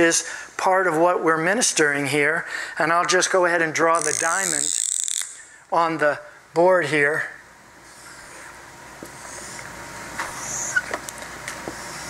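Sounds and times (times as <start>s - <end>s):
marker squeaking on board: 4.0s - 5.1s, 10.3s - 11.0s.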